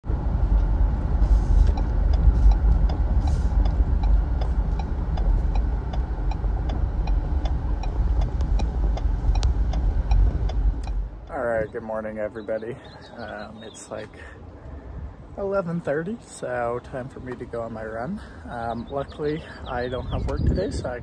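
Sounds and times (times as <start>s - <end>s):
wind buffeting microphone: 0.0s - 12.0s, 12.8s - 17.6s, 18.2s - 21.0s.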